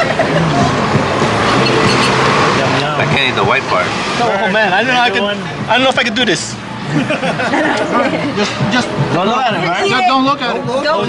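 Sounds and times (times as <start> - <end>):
vehicle passing: 0.0 - 10.4
people talking nearby: 2.5 - 11.0.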